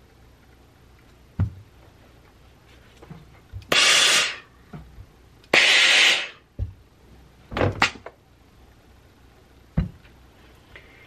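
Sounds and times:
steam iron hissing: 3.7s - 4.5s, 5.5s - 6.4s.

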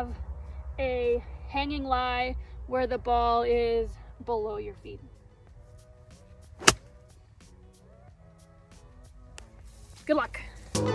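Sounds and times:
soft background music: 0.0s - 10.9s
golf club striking ball: 6.6s - 6.9s.

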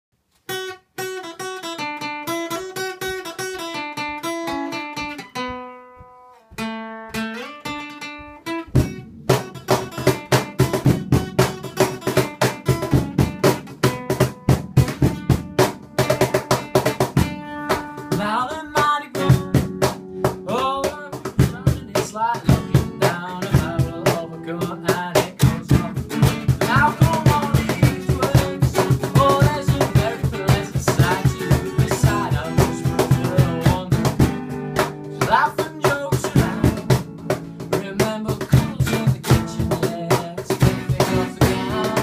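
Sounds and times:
acoustic guitar picking melody: 0.3s - 42.0s
cajon beat: 0.5s - 42.0s.

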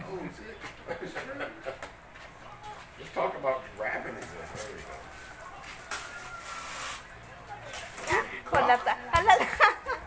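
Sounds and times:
wrapping paper rustling and tearing: 5.6s - 7.1s.

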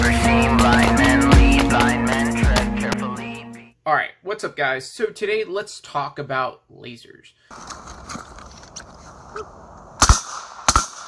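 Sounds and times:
rifle gunshots: 10.0s - 11.0s.

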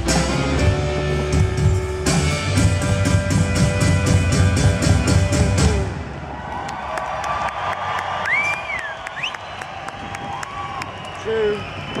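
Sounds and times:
crowd cheering and clapping: 5.6s - 12.0s.

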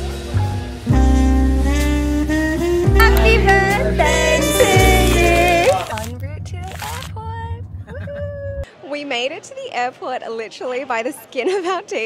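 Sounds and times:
woman's sing-song vocal sounds: 3.0s - 6.1s.

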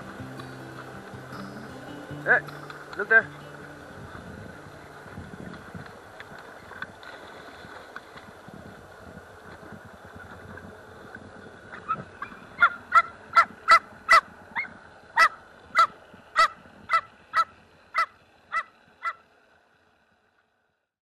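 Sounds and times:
water: 0.0s - 21.0s
wind: 0.0s - 21.0s.

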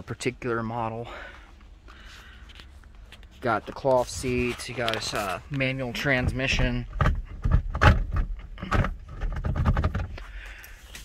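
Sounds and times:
short rustling: 1.9s - 6.5s.

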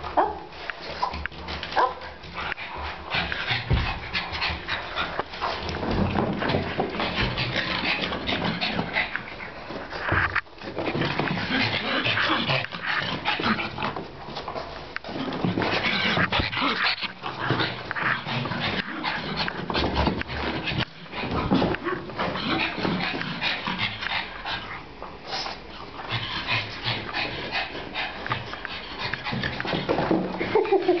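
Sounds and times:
dog panting hard: 1.5s - 14.0s, 15.5s - 21.6s, 22.2s - 31.0s.

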